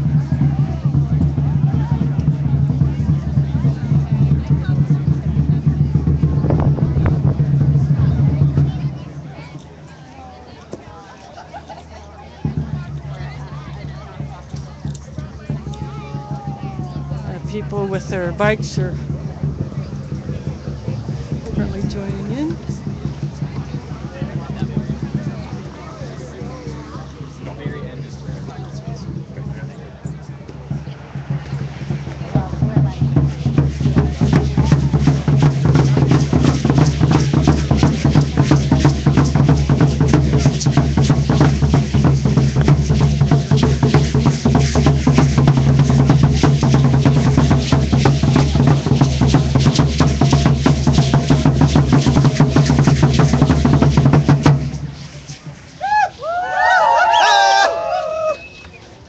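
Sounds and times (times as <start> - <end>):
drums beaten in fast beat: 0.0 - 9.6, 12.4 - 57.0.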